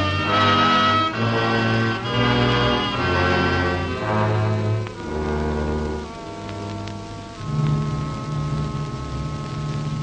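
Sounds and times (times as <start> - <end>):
film soundtrack hiss and crackle: 0.0 - 10.0
orchestral low chords: 0.0 - 10.0.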